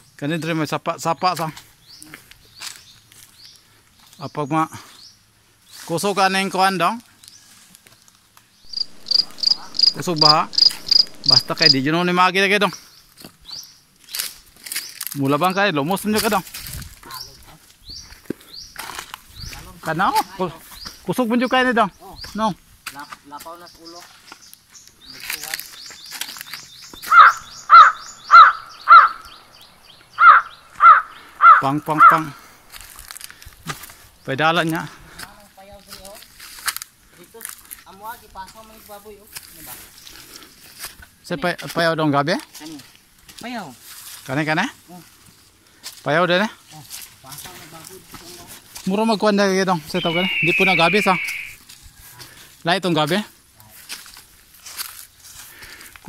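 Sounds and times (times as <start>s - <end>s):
leaves and twigs rustling: 1.4s - 4.3s, 5.6s - 56.0s
insect chirping: 8.6s - 12.7s, 26.0s - 35.0s, 49.2s - 51.6s
faint voices talking: 8.7s - 12.1s.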